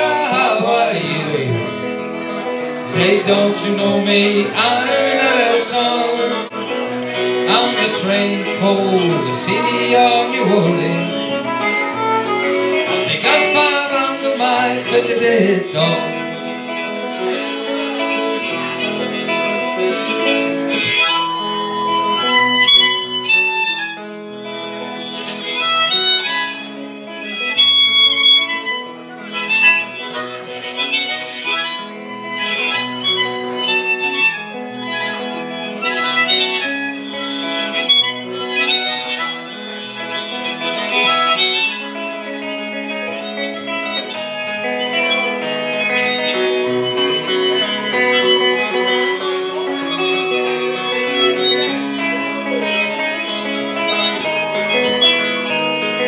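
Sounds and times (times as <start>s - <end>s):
guitar backing: 0.0s - 56.0s
harmonica solo: 0.0s - 56.0s.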